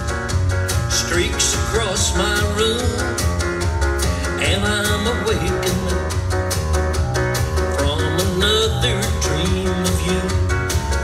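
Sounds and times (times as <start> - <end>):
country band playing: 0.0 - 11.0.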